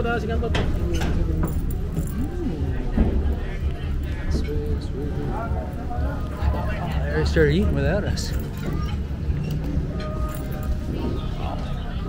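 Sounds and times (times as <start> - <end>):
people talking: 0.0 - 9.0
music: 0.0 - 12.0.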